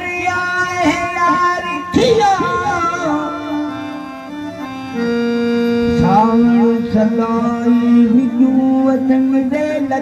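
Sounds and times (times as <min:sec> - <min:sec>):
man singing folk song: 0:00.0 - 0:03.8, 0:06.0 - 0:10.0
harmonium holding notes: 0:00.0 - 0:10.0.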